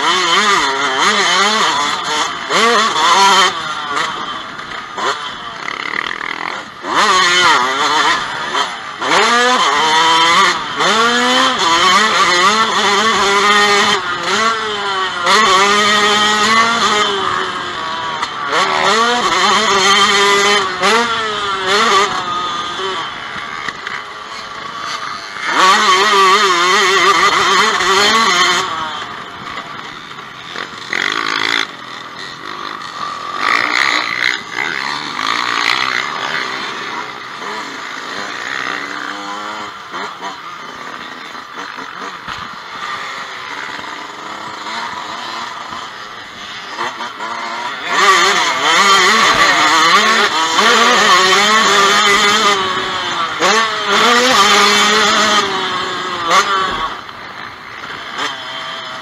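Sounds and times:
dirt bike engine revving: 0.0s - 59.0s.

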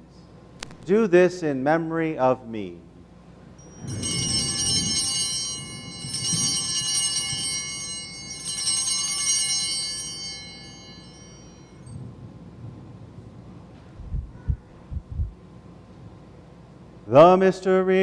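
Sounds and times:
altar bells ringing: 3.6s - 12.2s.

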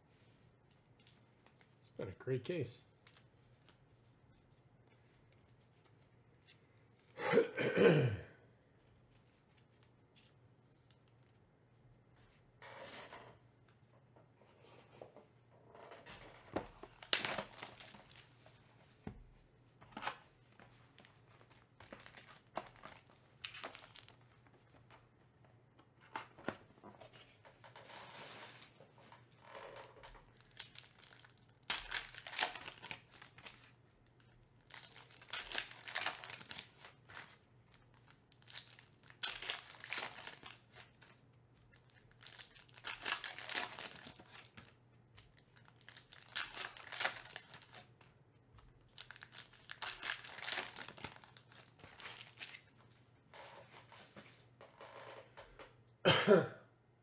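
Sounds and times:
foil wrappers tearing and crinkling: 16.8s - 18.4s, 21.0s - 24.2s, 30.3s - 44.8s, 45.4s - 47.9s, 48.9s - 52.7s.

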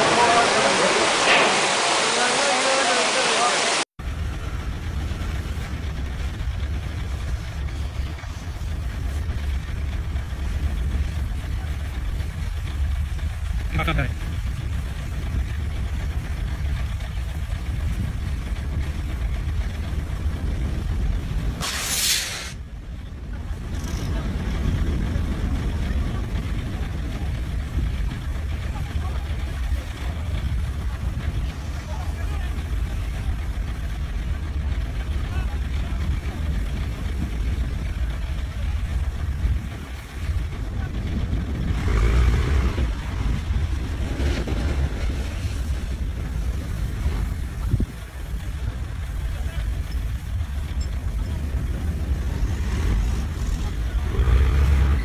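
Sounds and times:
steady low rumble: 4.0s - 55.0s
short sharp hiss: 21.6s - 22.6s.

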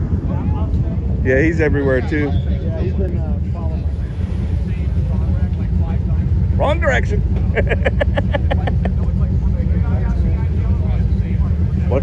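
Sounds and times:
car engine rumbling past: 0.0s - 12.0s.

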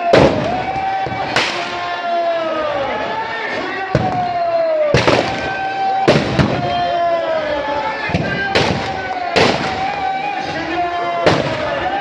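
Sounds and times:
firecracker bangs: 0.0s - 1.8s, 3.9s - 6.8s, 8.1s - 10.6s, 11.2s - 11.8s.

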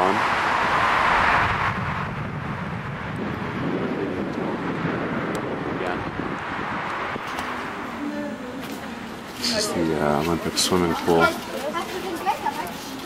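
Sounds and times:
busy road traffic: 0.0s - 13.0s.

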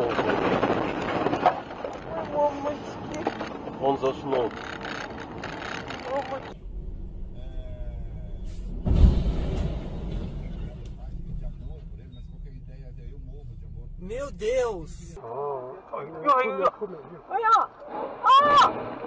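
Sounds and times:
steady low rumble: 6.5s - 15.3s
heavy low crash: 6.6s - 12.0s
person speaking: 14.0s - 15.2s.

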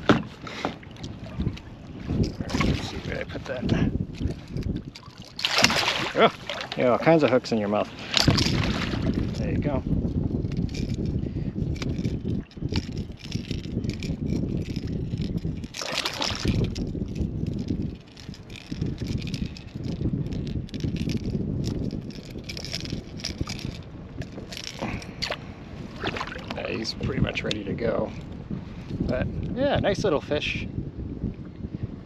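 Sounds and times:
water splashing against kayak: 0.0s - 7.2s, 7.8s - 9.5s, 15.5s - 17.1s, 22.6s - 27.6s
wind rumble on microphone: 0.0s - 32.0s.

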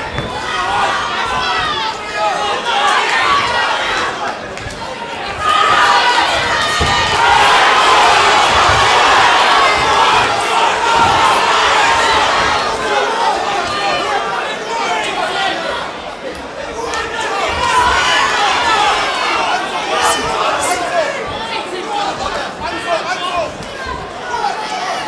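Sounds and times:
crowd shouting and cheering: 0.0s - 25.0s.

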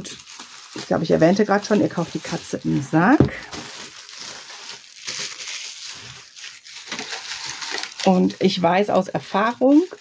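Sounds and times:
paper rustling: 0.0s - 8.2s
plastic wrapping crinkling: 0.0s - 10.0s.

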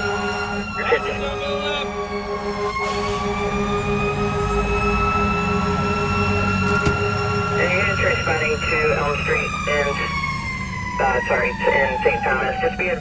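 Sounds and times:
fire engine siren: 0.0s - 13.0s
truck engine rumble: 0.0s - 13.0s.

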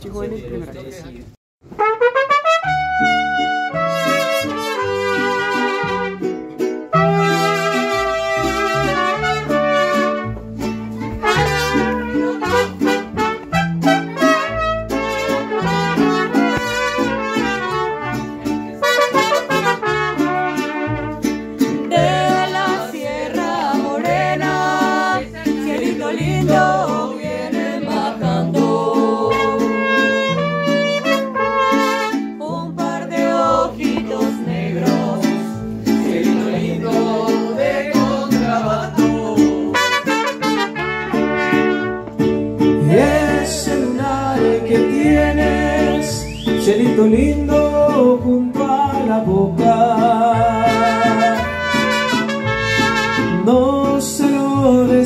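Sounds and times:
trumpets playing melody: 1.7s - 10.5s, 11.1s - 22.9s, 29.2s - 32.5s, 39.7s - 42.2s, 50.5s - 53.5s
strummed guitars: 1.8s - 55.0s
deep bass line: 2.7s - 39.8s.

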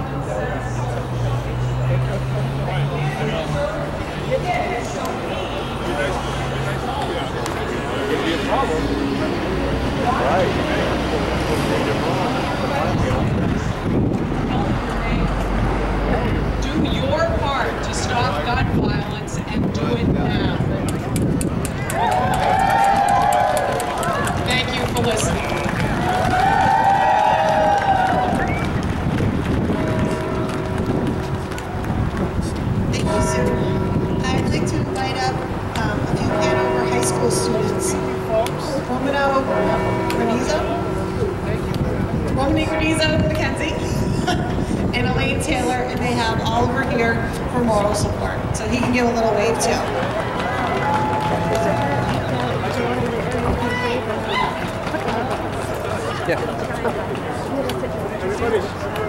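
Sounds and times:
crowd murmur: 0.0s - 59.0s
steady low rumble: 24.3s - 53.6s.

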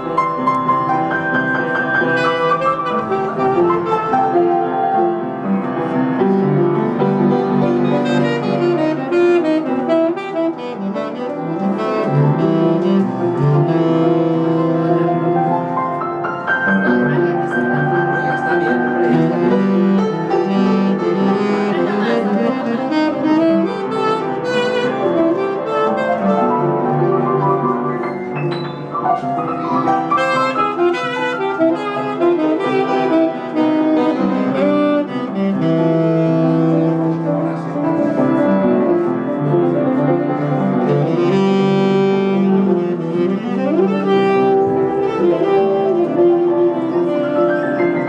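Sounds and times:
saxophone: 0.0s - 28.4s, 29.2s - 48.0s
upright piano: 0.0s - 48.0s.

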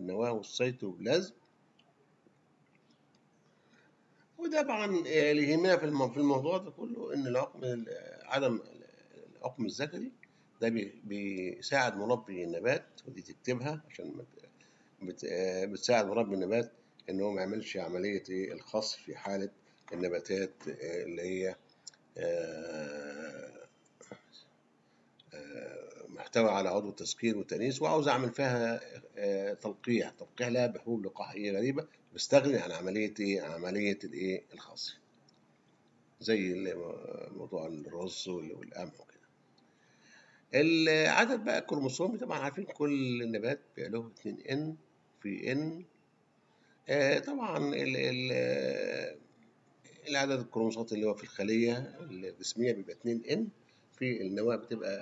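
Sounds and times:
man speaking: 0.0s - 1.4s, 4.4s - 21.6s, 22.2s - 24.4s, 25.3s - 35.0s, 36.2s - 39.2s, 40.5s - 45.9s, 46.9s - 49.3s, 49.9s - 55.0s.

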